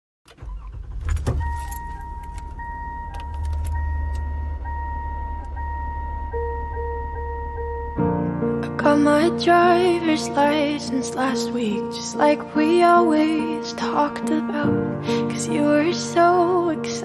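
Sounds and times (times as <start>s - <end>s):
car engine idling: 0.3s - 9.7s
keys jangling and clicking: 1.0s - 4.2s
repeating warning chime: 1.2s - 8.2s
low held note: 1.4s - 9.2s.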